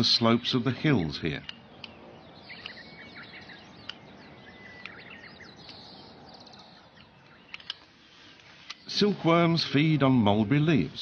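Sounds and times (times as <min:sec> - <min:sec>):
bird trill: 0:00.0 - 0:11.0
faint outdoor hiss: 0:00.0 - 0:11.0
small birds chirping: 0:00.0 - 0:11.0
bird whistle: 0:02.2 - 0:07.6.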